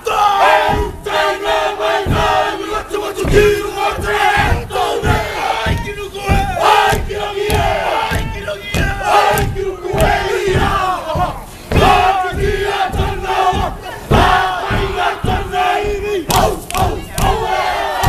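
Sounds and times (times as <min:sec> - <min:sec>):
heavy drumbeats: 0:00.0 - 0:18.0.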